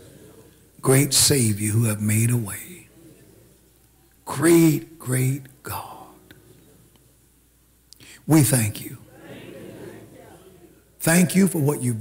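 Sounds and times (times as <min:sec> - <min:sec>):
low steady hum: 0:00.0 - 0:12.0
man praying: 0:00.8 - 0:02.9, 0:04.2 - 0:06.3, 0:08.1 - 0:09.0, 0:11.0 - 0:12.0.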